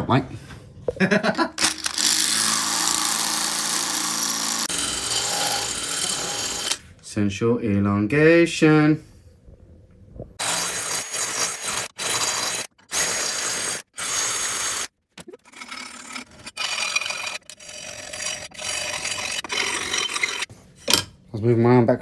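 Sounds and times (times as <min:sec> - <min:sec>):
hand file rasping on steel: 0:15.6 - 0:20.5.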